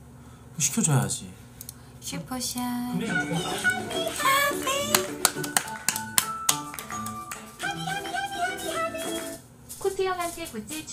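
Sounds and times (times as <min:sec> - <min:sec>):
bright music with held notes: 0:03.0 - 0:09.4
sharp hand claps: 0:04.1 - 0:08.1.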